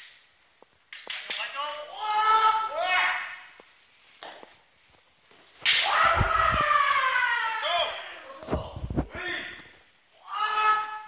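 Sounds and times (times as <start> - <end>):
bamboo sword strike crack: 5.6 - 6.3
long fighting shout: 5.8 - 8.2, 10.2 - 11.0.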